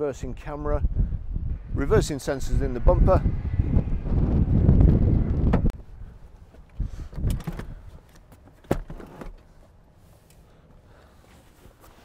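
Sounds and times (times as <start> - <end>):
wind rumble on microphone: 0.0 - 8.0.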